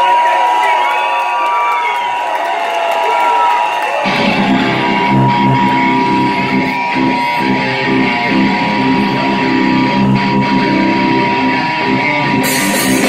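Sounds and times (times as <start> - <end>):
crowd whooping and cheering: 0.0 - 13.0
distorted electric guitars: 4.0 - 13.0
heavy metal band: 4.0 - 13.0
steady high tone: 4.1 - 12.5.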